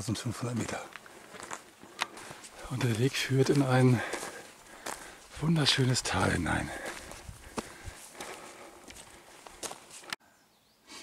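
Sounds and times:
footsteps on gravel and rock: 0:00.4 - 0:10.2.

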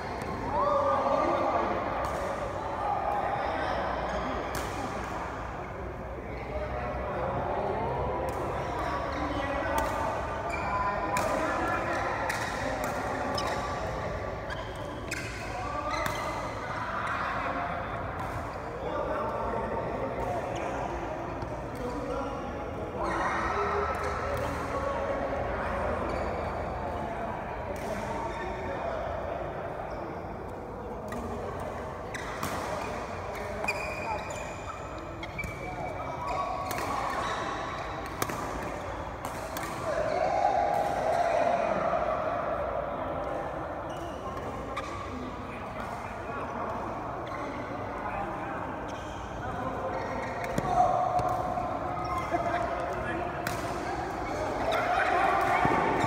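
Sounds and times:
rackets hitting shuttlecock: 0:08.2 - 0:10.3, 0:11.0 - 0:14.0, 0:34.9 - 0:40.1, 0:50.1 - 0:56.0.

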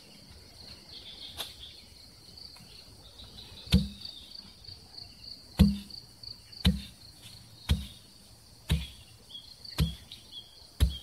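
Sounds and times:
insects chirring: 0:00.0 - 0:11.0
hoe chopping into soil: 0:03.7 - 0:04.1, 0:05.6 - 0:06.0, 0:06.6 - 0:10.2, 0:10.8 - 0:11.0.

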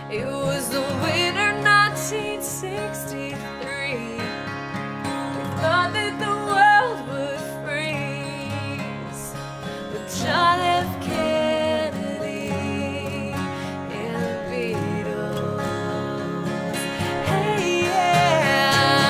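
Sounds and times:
acoustic guitars strumming: 0:00.0 - 0:19.0
woman singing: 0:00.0 - 0:19.0.

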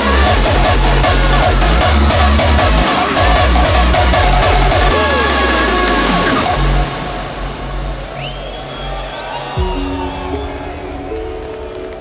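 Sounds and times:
heavy dance beat: 0:00.0 - 0:08.3.

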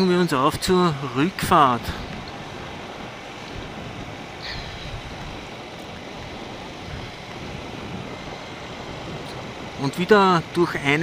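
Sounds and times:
motorcycle road and engine noise: 0:00.0 - 0:11.0
wind rushing over microphone: 0:00.0 - 0:11.0.

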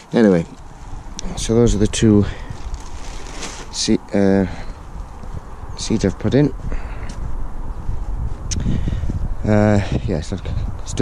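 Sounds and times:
wind buffeting microphone: 0:00.4 - 0:11.0.

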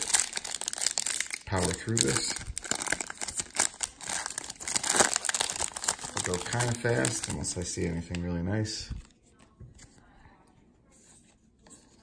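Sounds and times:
foil wrapper crinkling and tearing: 0:00.0 - 0:08.2.

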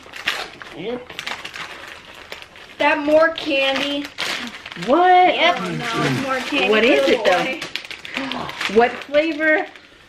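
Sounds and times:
plastic packaging crinkling: 0:00.0 - 0:10.0
child's voice: 0:04.8 - 0:07.6.

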